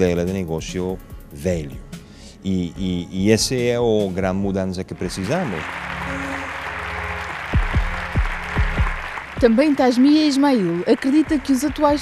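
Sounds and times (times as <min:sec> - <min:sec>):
music with low notes: 0:00.0 - 0:09.8
audience applauding: 0:04.9 - 0:12.0.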